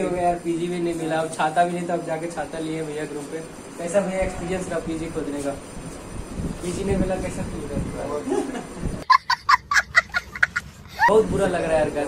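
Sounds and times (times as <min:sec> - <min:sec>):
man talking: 0:06.6 - 0:08.5, 0:11.1 - 0:12.0
young child laughing: 0:08.2 - 0:11.2.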